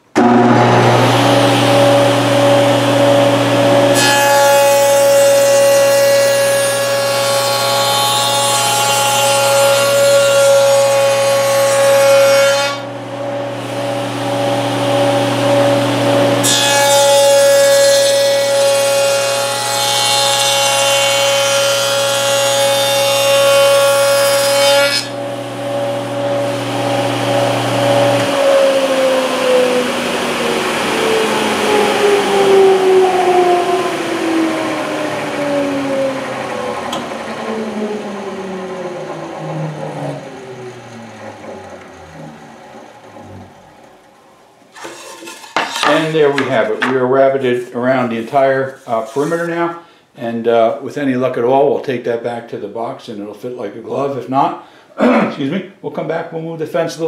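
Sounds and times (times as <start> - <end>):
saw blade spinning down whine: 0.0 - 10.0, 12.8 - 16.4, 25.1 - 45.0
table saw cutting wood: 0.0 - 44.0, 44.6 - 49.8.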